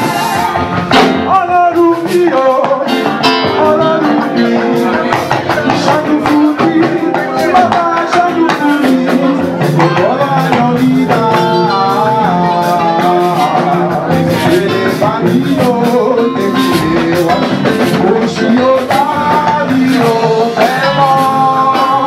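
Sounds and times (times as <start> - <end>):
instruments playing: 0.0 - 22.0
steady drum beat: 0.0 - 22.0
voices singing together: 0.0 - 22.0.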